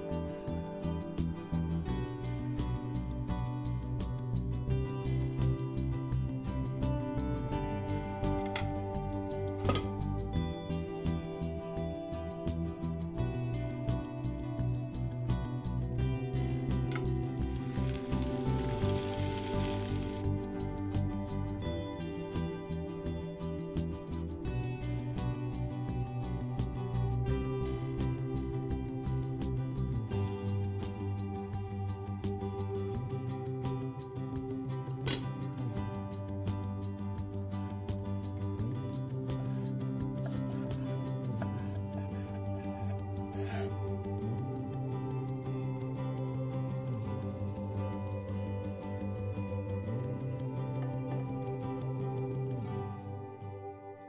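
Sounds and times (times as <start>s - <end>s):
soft background music: 0.0s - 54.0s
food sizzling in a frying pan: 17.4s - 20.2s
short scraping rub: 39.6s - 43.8s.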